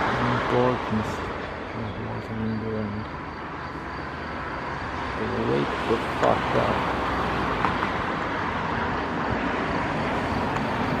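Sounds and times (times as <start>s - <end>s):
distant road traffic: 0.0s - 11.0s.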